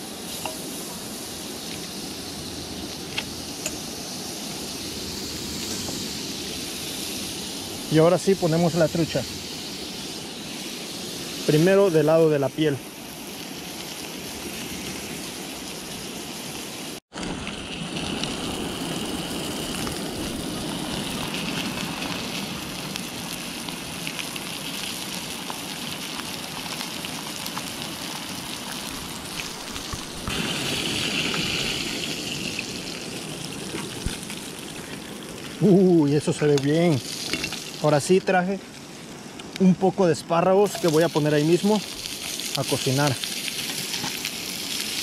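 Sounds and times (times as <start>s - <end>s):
fish sizzling in a pan: 0.0s - 45.0s.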